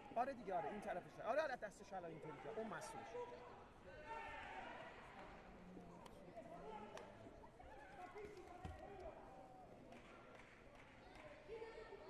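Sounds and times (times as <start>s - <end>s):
faint voices in echoing hall: 0.0s - 12.0s.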